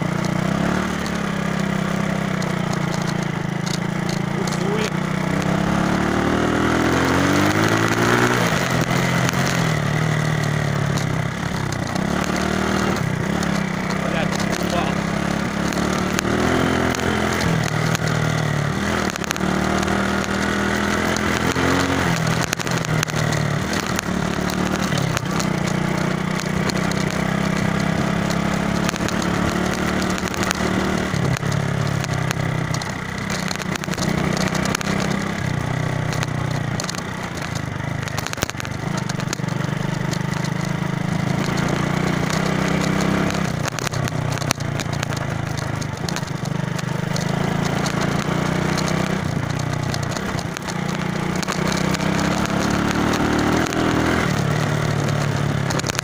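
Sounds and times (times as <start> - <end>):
small motorcycle engine: 0.0 - 56.0.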